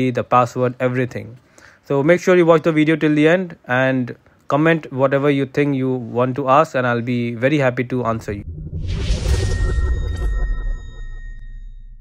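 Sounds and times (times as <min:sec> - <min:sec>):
deep rumble: 0:08.2 - 0:12.0
rushing whoosh: 0:08.3 - 0:11.5
high ringing shimmer: 0:09.0 - 0:12.0.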